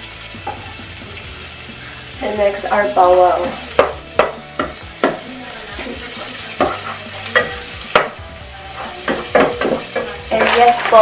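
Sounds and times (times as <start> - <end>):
onion and garlic sizzling in oil: 0.0 - 11.0
wooden spoon scraping a pot: 8.7 - 11.0.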